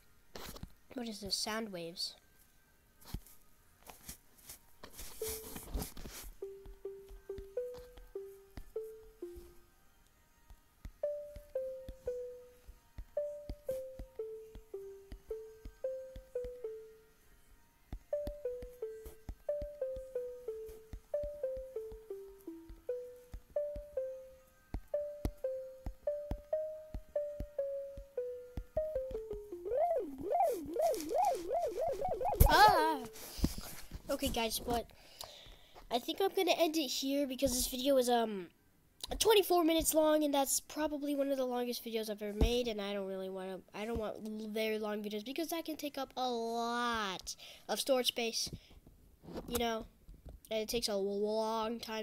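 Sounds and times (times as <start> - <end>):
simple synth tones melody: 5.0 - 33.8.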